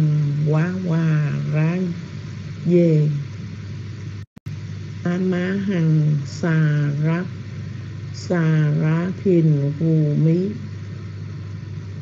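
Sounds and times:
microphone hum and hiss: 0.0s - 12.0s.

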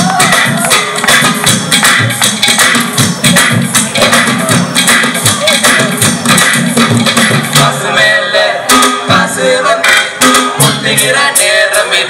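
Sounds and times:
percussive beat: 0.0s - 7.8s, 8.6s - 11.5s
men singing into a microphone: 7.6s - 12.0s.

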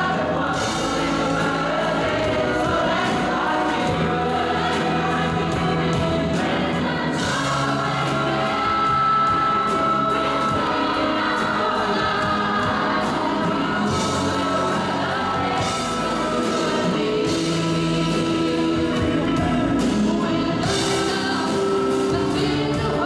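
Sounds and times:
choir singing: 0.0s - 23.0s.

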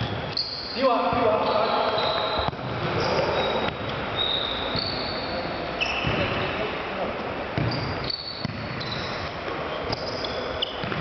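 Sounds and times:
shoe squeaks: 0.0s - 6.6s, 7.6s - 11.0s
players' voices in a hall: 0.6s - 11.0s.

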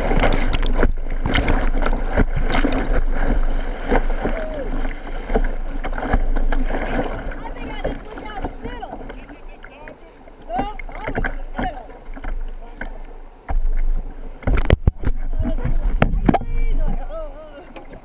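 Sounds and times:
paddle strokes slapping water: 0.0s - 18.0s
whitewater rushing and splashing: 0.0s - 18.0s.

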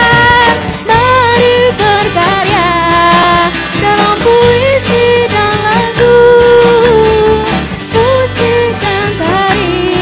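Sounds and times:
conga drum: 0.0s - 10.0s
electric bass: 0.0s - 10.0s
strummed acoustic guitars: 0.0s - 10.0s.

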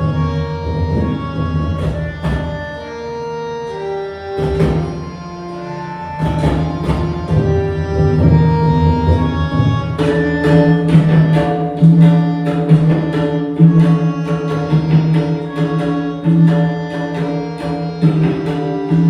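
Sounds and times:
tabla drumming: 0.0s - 2.9s, 4.3s - 5.2s, 6.0s - 19.0s
harmonium melody with low drone: 0.0s - 19.0s.

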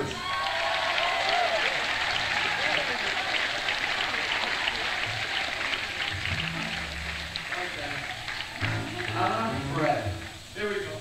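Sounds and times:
audience applause: 0.0s - 11.0s.

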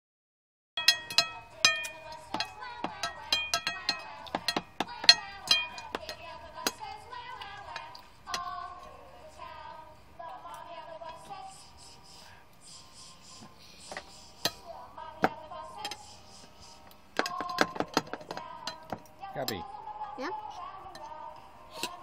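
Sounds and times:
cutlery and dishes clinking: 0.8s - 6.9s, 21.8s - 22.0s
song playing in background: 0.8s - 22.0s.

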